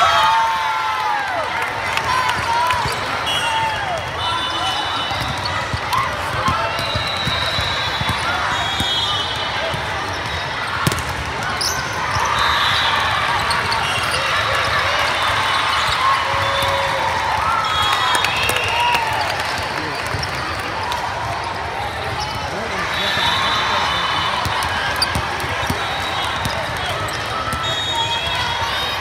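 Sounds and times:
many voices in a hall: 0:00.0 - 0:29.0.

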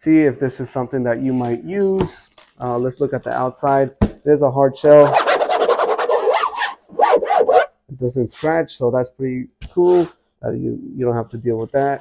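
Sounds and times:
fingers scratching hard shell: 0:05.1 - 0:07.7.

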